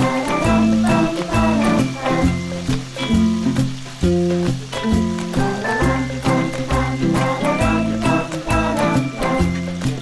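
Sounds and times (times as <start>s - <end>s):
background music with beat: 0.0s - 10.0s
meat deep-frying in oil: 0.0s - 10.0s.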